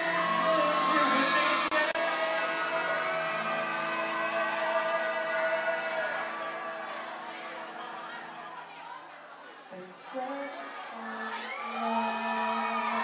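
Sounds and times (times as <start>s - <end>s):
live band sustained chord: 0.0s - 9.5s
held vocal line: 0.0s - 13.0s.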